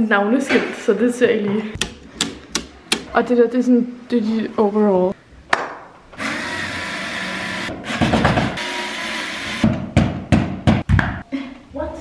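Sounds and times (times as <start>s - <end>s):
cordless drill whining: 6.2s - 7.7s.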